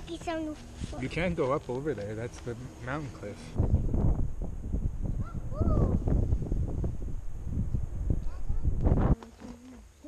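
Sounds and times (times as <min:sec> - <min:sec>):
wind buffeting microphone: 0:03.4 - 0:09.3.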